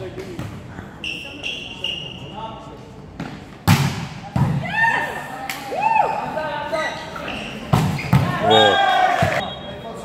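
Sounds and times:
sneakers squeaking on gym floor: 0:06.7 - 0:09.4.

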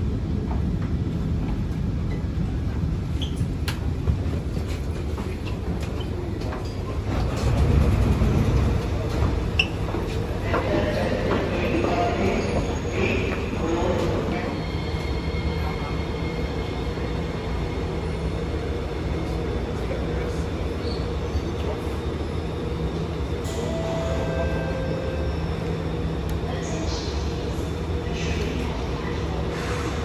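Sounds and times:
train wheels rumbling: 0:00.0 - 0:24.4.

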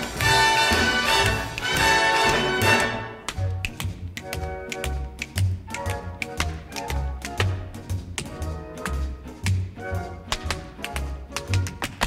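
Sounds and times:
orchestra playing dance music: 0:00.0 - 0:12.0
tap dancing steps: 0:00.0 - 0:12.0.

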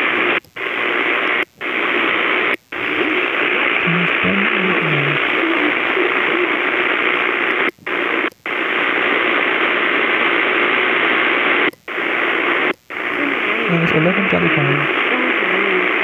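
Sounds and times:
radio static hiss: 0:00.0 - 0:16.0.

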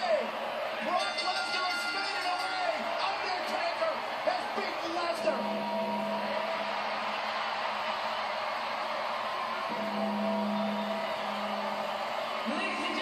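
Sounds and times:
arena crowd noise: 0:00.0 - 0:13.0
music: 0:05.2 - 0:07.4, 0:09.5 - 0:13.0.

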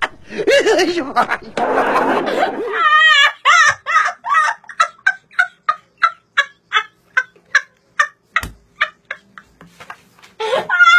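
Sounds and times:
boy laughing uncontrollably: 0:00.0 - 0:09.5, 0:10.4 - 0:10.9.

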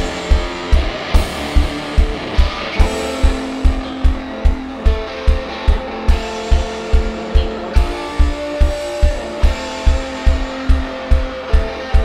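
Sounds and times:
electric guitar notes: 0:00.0 - 0:12.0
kick drum and bass beat: 0:00.0 - 0:12.0.

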